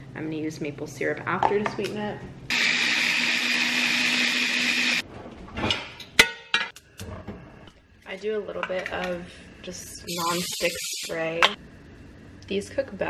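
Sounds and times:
electric blender whirring: 2.5s - 5.0s.

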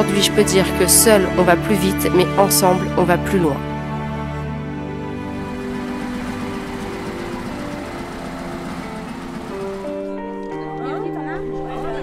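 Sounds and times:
soft background music: 0.0s - 12.0s
van engine rumbling: 5.3s - 10.1s.

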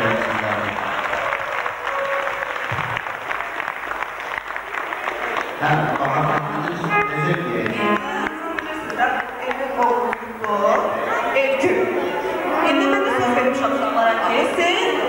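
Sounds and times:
children clapping: 0.0s - 13.3s
music playing: 0.0s - 15.0s
person speaking: 5.6s - 15.0s.

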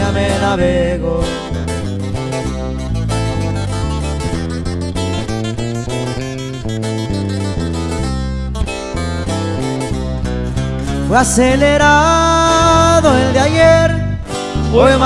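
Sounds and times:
acoustic guitars strumming: 0.0s - 15.0s
steady bass line: 0.0s - 15.0s.

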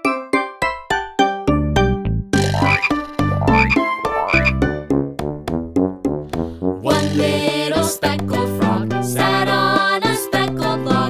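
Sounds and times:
bouncy children's music: 0.0s - 11.0s
cartoon frog croaking: 2.4s - 4.7s, 6.9s - 7.6s.

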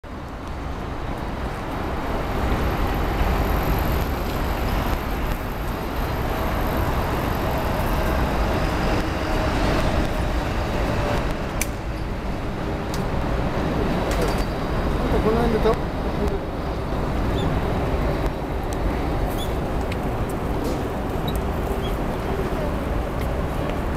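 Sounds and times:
road traffic hum: 0.0s - 23.9s.

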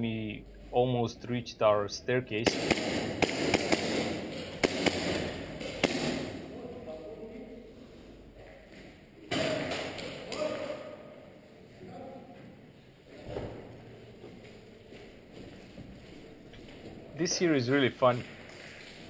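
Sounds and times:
airsoft gun shots: 2.4s - 6.4s.

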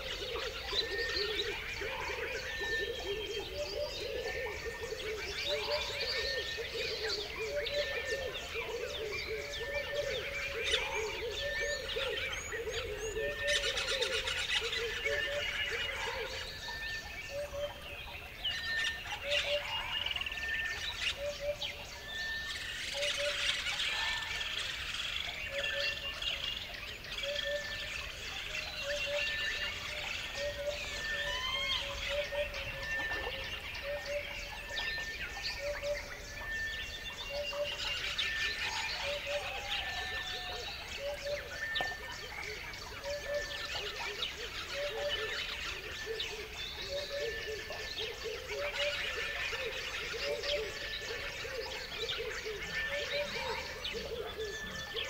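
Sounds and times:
birds chirping and calling: 0.0s - 55.0s.

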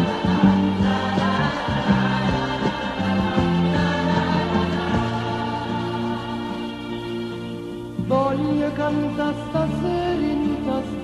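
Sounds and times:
choir singing sustained notes: 0.0s - 10.6s
instrumental accompaniment: 0.0s - 11.0s.

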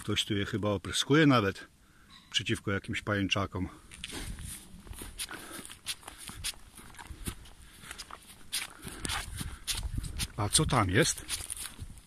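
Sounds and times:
footsteps crackling through leaves: 11.0s - 12.0s.

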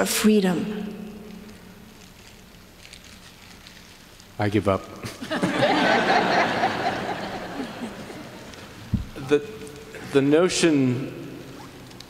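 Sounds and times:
faint steady hum and hiss: 0.0s - 12.0s
soft rustles: 1.9s - 4.4s.

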